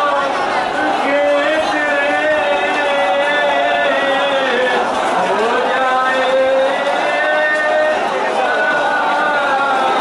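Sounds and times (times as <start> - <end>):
person chanting lament: 0.0 - 10.0.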